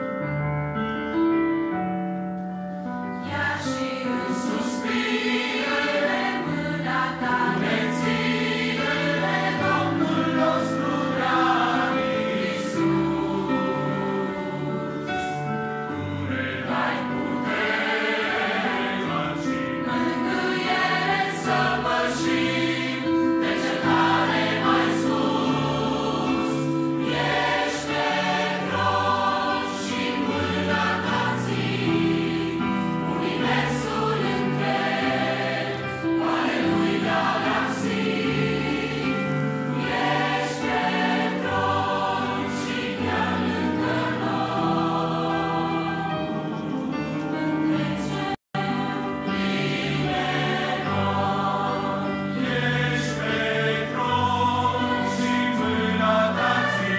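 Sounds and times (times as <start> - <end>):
choir singing a hymn: 2.8 - 56.9.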